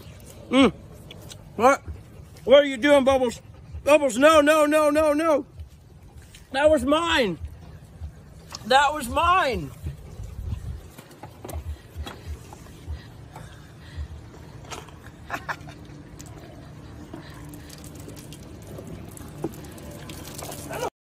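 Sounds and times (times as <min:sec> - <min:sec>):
elephant chewing food: 0:00.0 - 0:03.8, 0:07.4 - 0:20.9.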